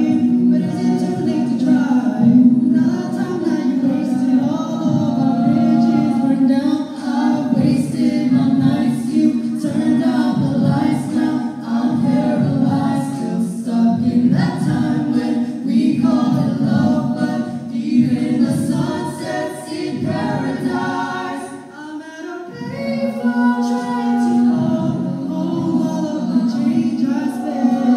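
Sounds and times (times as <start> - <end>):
a cappella group singing: 0.0 - 27.9.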